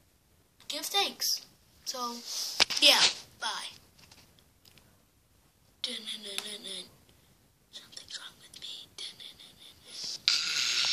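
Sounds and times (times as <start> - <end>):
boy whispering: 5.8 - 7.0, 7.7 - 10.9.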